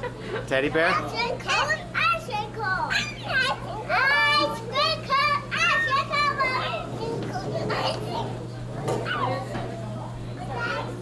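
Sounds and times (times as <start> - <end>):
steady low hum: 0.0 - 11.0
toddler babbling: 1.0 - 8.4.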